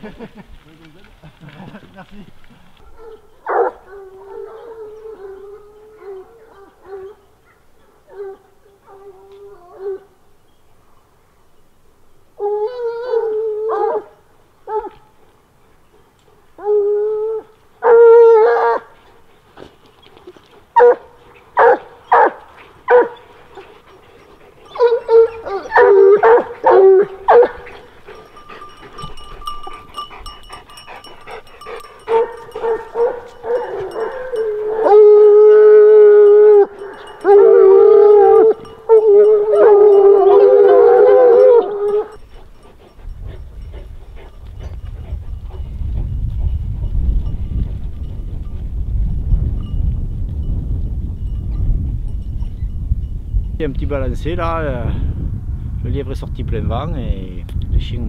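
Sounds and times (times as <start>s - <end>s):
hounds baying and howling: 2.7s - 10.9s, 12.3s - 48.3s
hounds barking: 2.8s - 9.1s, 12.6s - 15.0s, 16.6s - 19.0s, 20.2s - 43.1s.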